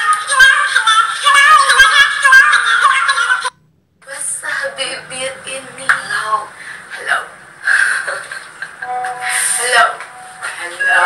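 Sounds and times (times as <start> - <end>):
faint karaoke music: 0.0 - 11.0.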